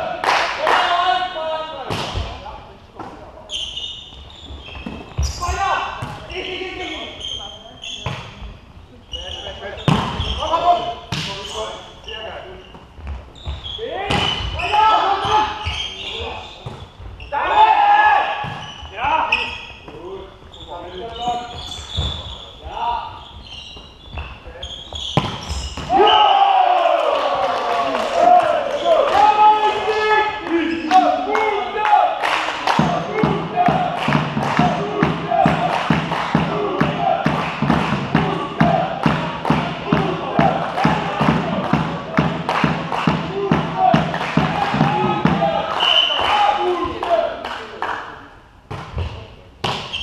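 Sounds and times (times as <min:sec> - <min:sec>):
volleyball slaps: 0:01.9 - 0:02.4, 0:11.1 - 0:11.4, 0:32.2 - 0:47.7, 0:48.7 - 0:49.9
players shouting: 0:13.8 - 0:15.7, 0:17.3 - 0:19.4, 0:25.8 - 0:47.4.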